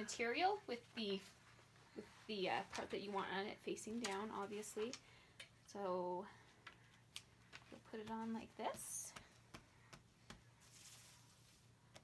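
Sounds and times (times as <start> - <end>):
hand rustling plastic sheet: 7.4 - 11.8.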